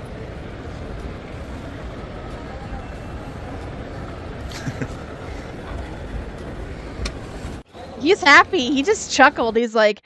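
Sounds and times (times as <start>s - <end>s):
moving walkway rumble: 0.0s - 9.7s
airport hall hum: 0.0s - 10.0s.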